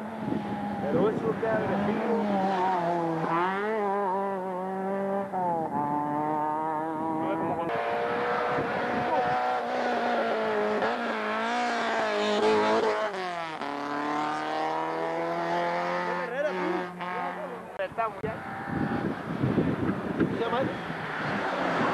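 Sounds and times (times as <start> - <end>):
rally car engines revving: 0.0 - 21.9.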